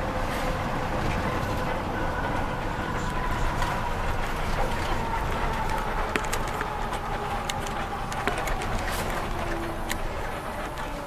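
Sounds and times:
bus engine and road rumble: 0:00.0 - 0:11.0.

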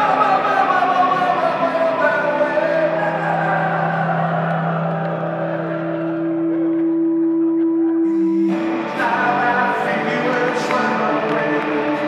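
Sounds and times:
acoustic guitar: 0:00.0 - 0:12.0
lap steel guitar: 0:00.0 - 0:12.0.

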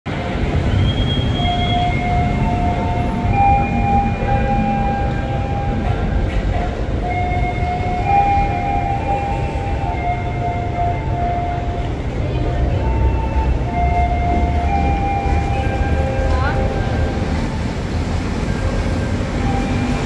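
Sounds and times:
high steady train tones: 0:00.0 - 0:20.0
electric train rumble: 0:00.1 - 0:20.0.

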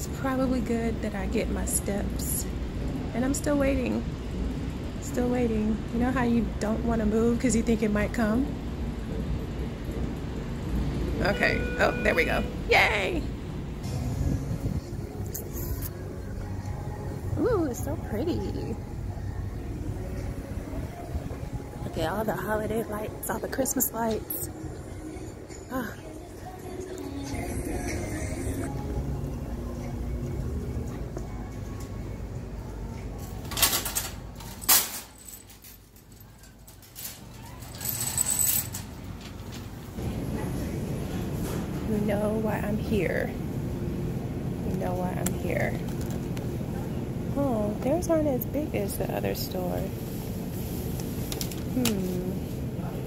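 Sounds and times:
city traffic rumble: 0:00.0 - 0:53.0
shopping carts clanking: 0:33.2 - 0:40.0
metallic rattle: 0:33.4 - 0:39.4.

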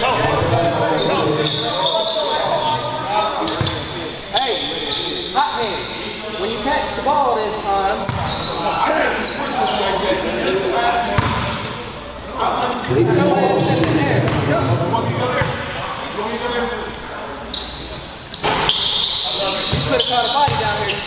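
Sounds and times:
people talking: 0:00.0 - 0:18.1, 0:19.3 - 0:21.0.

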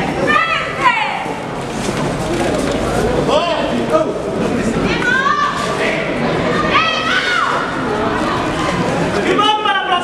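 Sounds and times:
crowd noise: 0:00.0 - 0:10.0
people shouting: 0:06.5 - 0:10.0.

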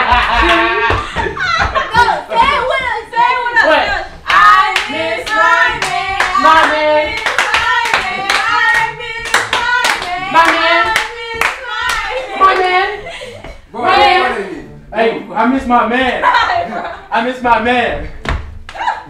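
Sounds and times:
rhythmic hand clapping: 0:00.0 - 0:03.1, 0:04.2 - 0:12.9
people singing a chant: 0:02.3 - 0:14.6.

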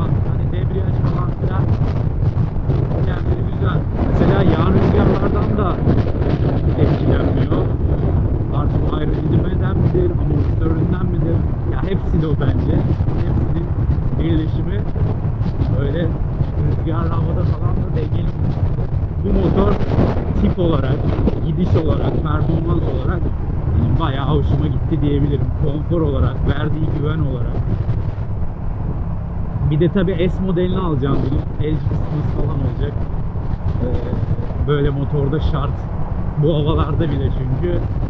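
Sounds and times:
muffled voice talking: 0:00.0 - 0:01.8, 0:02.9 - 0:06.0, 0:06.6 - 0:15.0, 0:15.7 - 0:18.5, 0:19.2 - 0:27.6, 0:29.6 - 0:33.1, 0:33.8 - 0:35.8, 0:36.4 - 0:37.9
wind buffeting microphone: 0:00.0 - 0:38.0.

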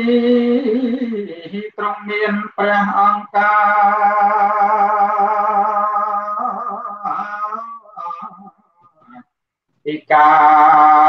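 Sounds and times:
man chanting: 0:00.0 - 0:08.6, 0:09.9 - 0:11.0.

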